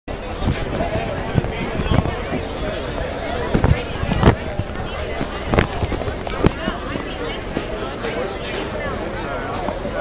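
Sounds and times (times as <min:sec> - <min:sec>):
crowd talking: 0:00.1 - 0:10.0.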